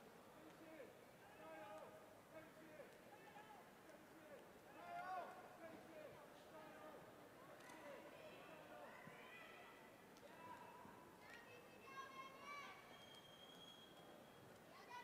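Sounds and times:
people talking in a large hall: 0.0 - 15.0
faint clicks: 7.5 - 7.9.

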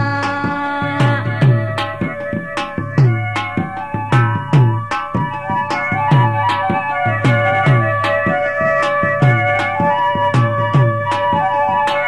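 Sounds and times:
steady held melodic tones: 0.0 - 12.0.

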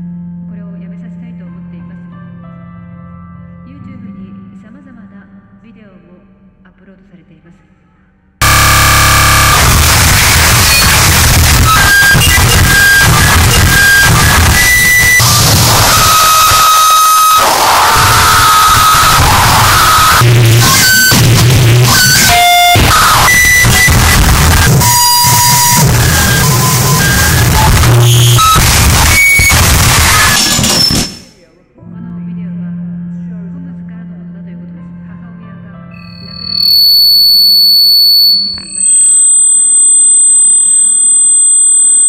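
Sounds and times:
distorted static noise: 8.4 - 31.4, 36.0 - 42.0
shrill tones: 8.4 - 31.4, 36.0 - 42.0.

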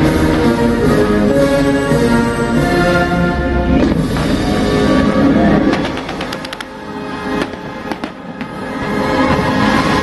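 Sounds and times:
music soundtrack: 0.0 - 10.0
fireworks cracking: 5.5 - 10.0.

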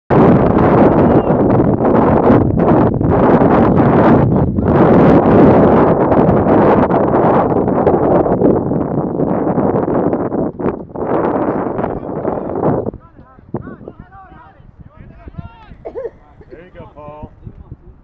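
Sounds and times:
wind buffeting microphone: 0.1 - 18.0.

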